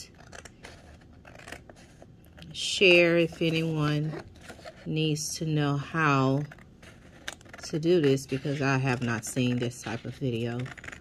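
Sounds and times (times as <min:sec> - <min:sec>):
scissors cutting paper: 0:00.0 - 0:11.0.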